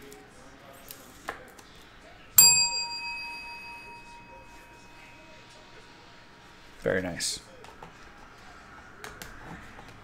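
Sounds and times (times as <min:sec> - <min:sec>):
bell-like ding: 0:02.4 - 0:05.3.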